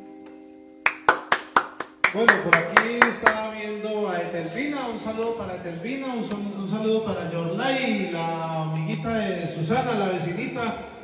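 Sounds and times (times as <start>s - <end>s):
electronic keyboard chord: 0.0s - 6.3s
hand claps: 0.8s - 3.5s.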